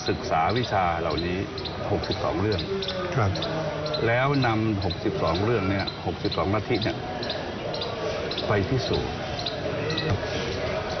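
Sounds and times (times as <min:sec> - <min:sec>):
man speaking: 0:00.0 - 0:07.0
faint voices: 0:00.0 - 0:11.0.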